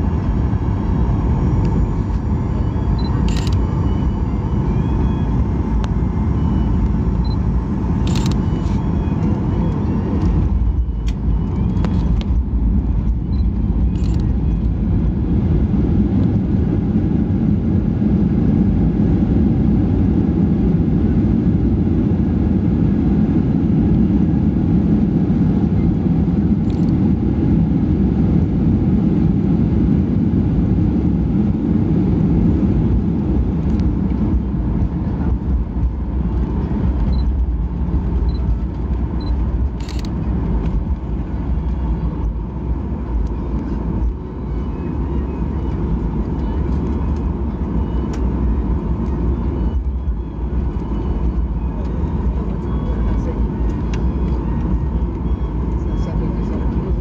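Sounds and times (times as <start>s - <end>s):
airplane cabin rumble while taxiing: 0.0s - 57.0s.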